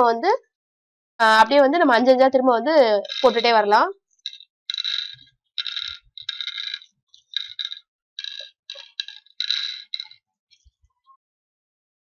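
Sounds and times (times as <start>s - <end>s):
seeds rattling on wooden board: 2.8s - 10.2s.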